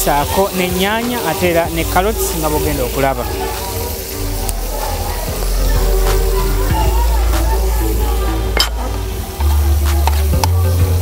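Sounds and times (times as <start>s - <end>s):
food sizzling: 0.0s - 11.0s
music with deep bass line: 0.0s - 11.0s.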